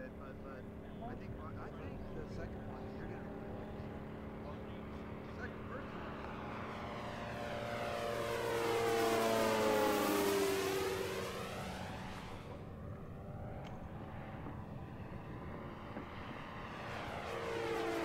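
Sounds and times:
model plane propeller drone: 0:00.0 - 0:18.0.

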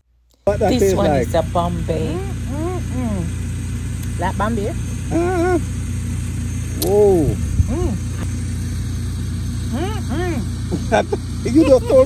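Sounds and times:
engine idling: 0:00.4 - 0:12.0
woman speaking: 0:00.6 - 0:03.4, 0:04.1 - 0:04.9.

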